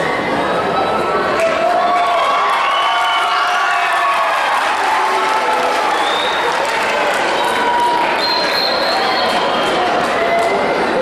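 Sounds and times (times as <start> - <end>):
audience applauding and cheering: 1.3 - 11.0.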